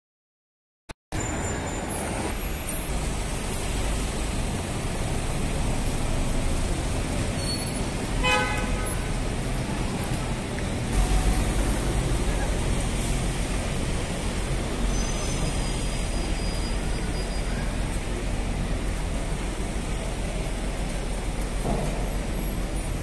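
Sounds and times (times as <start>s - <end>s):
passing vehicles: 1.2s - 23.0s
car horn toot: 7.5s - 9.1s.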